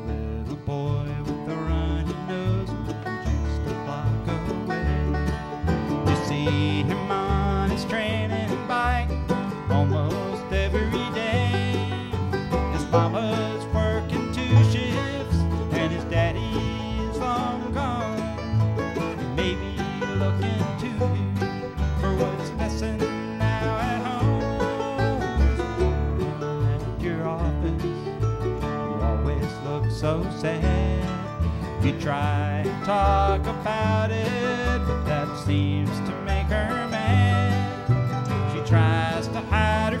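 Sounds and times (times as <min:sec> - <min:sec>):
banjo picking: 0:00.0 - 0:40.0
bluegrass band playing: 0:00.0 - 0:40.0.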